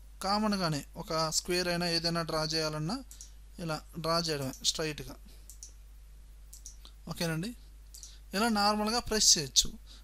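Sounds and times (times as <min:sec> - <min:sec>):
steady low hum: 0:00.0 - 0:10.0
computer mouse clicks: 0:03.1 - 0:03.4, 0:05.4 - 0:05.8, 0:06.5 - 0:07.0.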